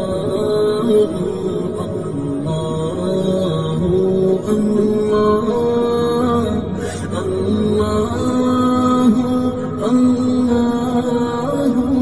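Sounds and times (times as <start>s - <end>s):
devotional chant: 0.0s - 12.0s.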